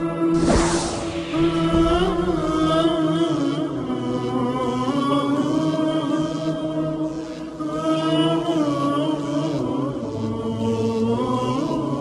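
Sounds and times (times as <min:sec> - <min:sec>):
unaccompanied chanting voices: 0:00.0 - 0:12.0.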